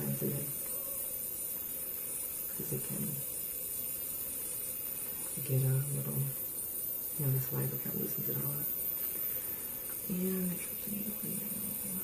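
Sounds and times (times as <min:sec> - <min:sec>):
faint constant hum: 0:00.0 - 0:12.0
steady background hiss: 0:00.0 - 0:12.0.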